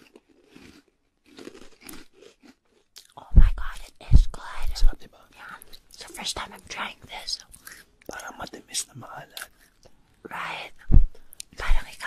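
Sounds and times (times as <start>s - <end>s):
soft whispered speech: 3.0s - 9.6s, 10.2s - 12.0s
loud low thumps: 10.9s - 11.2s.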